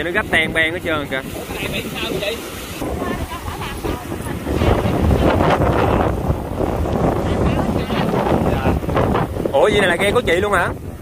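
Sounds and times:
waves breaking on rocky shore: 0.0 - 11.0
wind buffeting microphone: 0.0 - 11.0.

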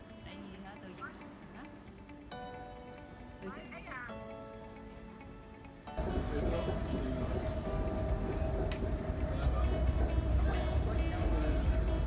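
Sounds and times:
train rumble inside carriage: 6.0 - 12.0.

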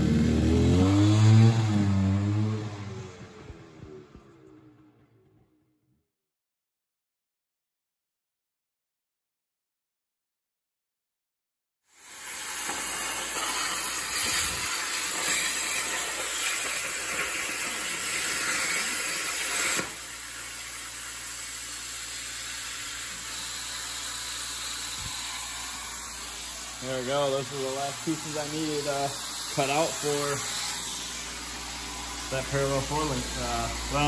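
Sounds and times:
plasma cutter hissing: 11.9 - 34.0.

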